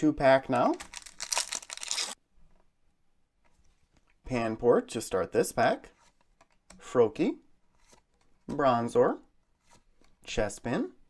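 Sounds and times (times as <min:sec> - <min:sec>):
foil wrapper tearing: 0:00.7 - 0:02.2.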